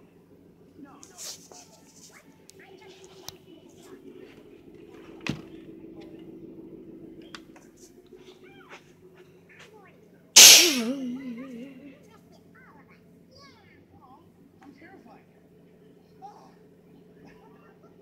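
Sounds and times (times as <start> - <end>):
television cartoon soundtrack: 0.0 - 18.0
sharp knock: 10.4 - 11.1
high cartoon voices: 10.4 - 12.0
wavering voice: 10.4 - 12.0.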